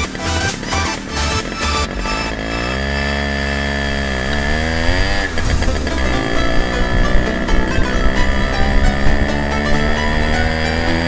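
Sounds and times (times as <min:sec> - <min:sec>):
music: 0:00.0 - 0:02.4, 0:05.6 - 0:11.0
moped engine revving: 0:00.0 - 0:11.0.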